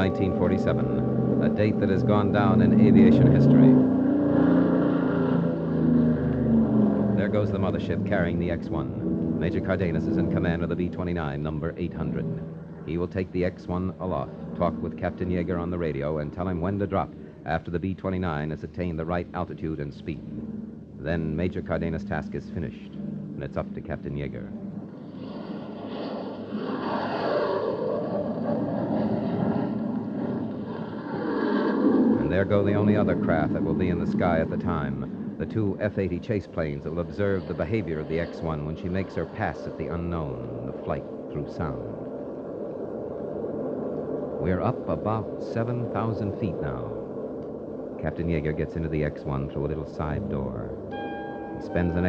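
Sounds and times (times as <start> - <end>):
piston aircraft engines droning: 0.0 - 52.0.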